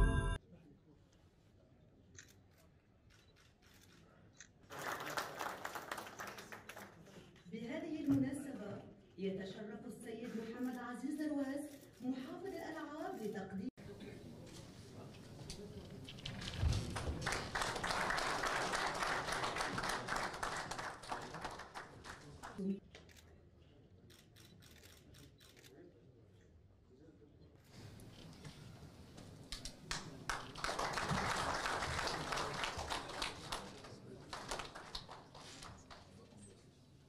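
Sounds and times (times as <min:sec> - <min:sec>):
roomful of people applauding: 0:04.6 - 0:07.4, 0:16.2 - 0:22.6, 0:29.5 - 0:36.5.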